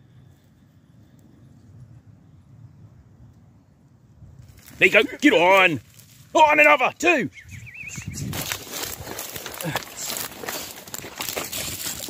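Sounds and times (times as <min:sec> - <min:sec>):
footsteps through dry grass: 0:04.4 - 0:06.4, 0:07.6 - 0:12.0.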